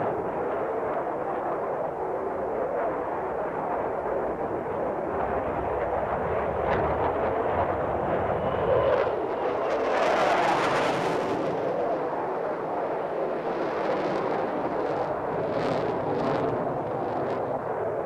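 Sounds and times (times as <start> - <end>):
jet engine roar: 0.0 - 18.0.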